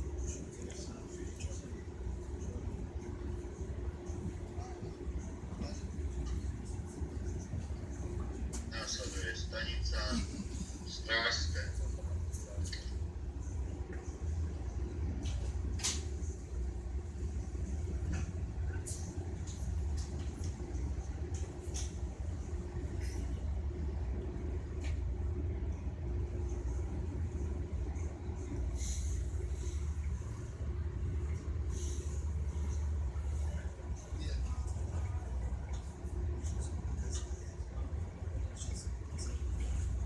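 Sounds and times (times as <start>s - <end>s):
train rumble inside carriage: 0.0s - 40.0s.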